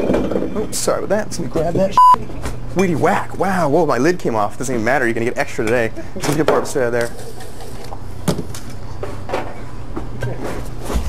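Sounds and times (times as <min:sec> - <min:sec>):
low steady hum: 0:00.7 - 0:06.2.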